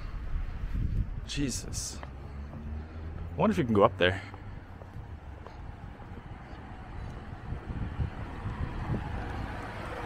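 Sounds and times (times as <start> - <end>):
wind on microphone: 0.0 - 1.8, 4.9 - 10.0
street traffic rumble: 0.0 - 10.0
car passing: 1.5 - 10.0.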